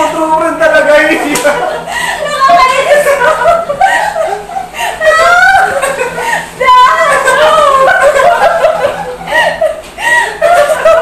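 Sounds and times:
excited voices: 0:00.0 - 0:11.0
people laughing loudly: 0:01.0 - 0:11.0.

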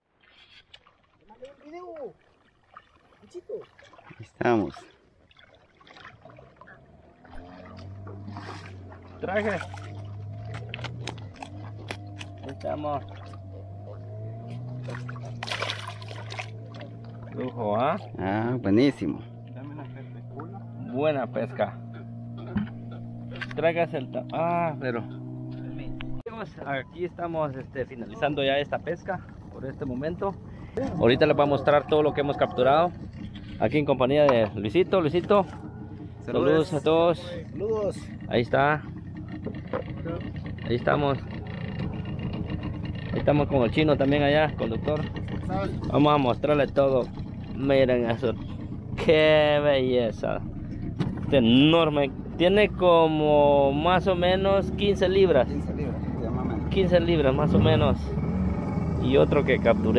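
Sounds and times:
fish thrashing and splashing water: 0:00.0 - 0:18.2
outboard motor humming: 0:00.2 - 0:59.9.

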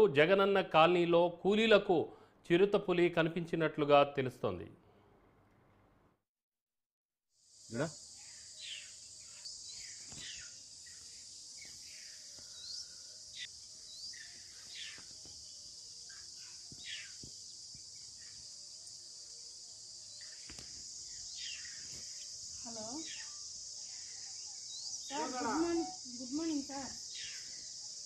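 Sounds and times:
high insect drone: 0:07.4 - 0:28.0
bird chirps: 0:08.1 - 0:18.5, 0:20.1 - 0:28.0.

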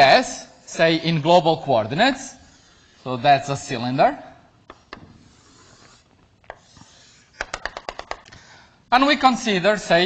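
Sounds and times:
chalk rubbing on blackboard: 0:02.0 - 0:03.6, 0:05.0 - 0:07.5
chalk tap: 0:04.7 - 0:08.2.

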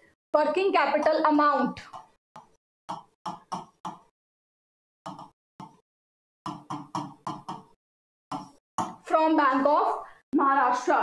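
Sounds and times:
stylus tapping on whiteboard screen: 0:01.0 - 0:04.1, 0:05.1 - 0:05.8, 0:06.5 - 0:09.2.

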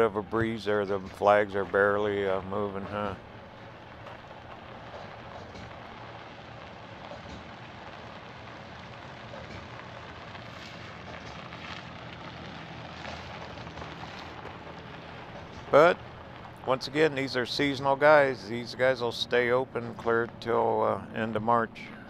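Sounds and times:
low engine hum: 0:00.0 - 0:22.0
tyres crunching on gravel: 0:00.0 - 0:22.0.

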